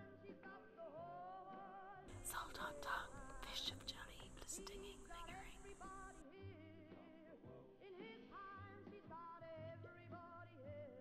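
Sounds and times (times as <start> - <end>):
person whispering: 2.1 - 6.2
soft sliding voice-like music: 2.1 - 6.7.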